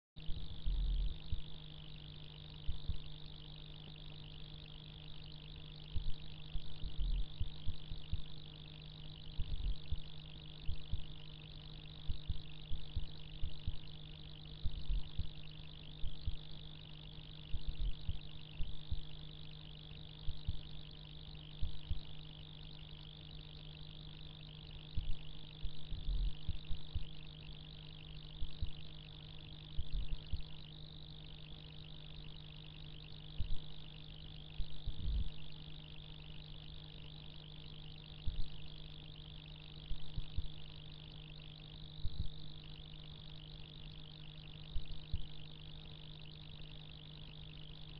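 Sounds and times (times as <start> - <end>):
steady low hum: 0.2 - 47.9.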